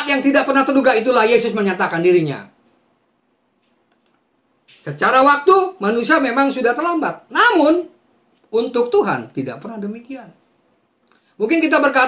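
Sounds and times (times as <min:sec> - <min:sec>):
man speaking: 0:00.0 - 0:02.5, 0:04.8 - 0:10.4, 0:11.4 - 0:12.0
faint short clicks: 0:03.6 - 0:04.8.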